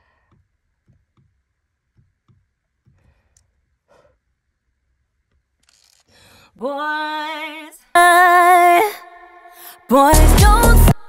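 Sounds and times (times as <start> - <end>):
soft breath: 0.0 - 0.5, 2.9 - 4.4, 6.0 - 6.6.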